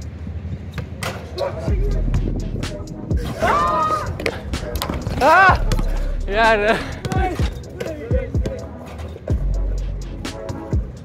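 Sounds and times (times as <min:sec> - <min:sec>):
player shouting: 0:03.2 - 0:08.3
basketballs bouncing: 0:04.0 - 0:09.0.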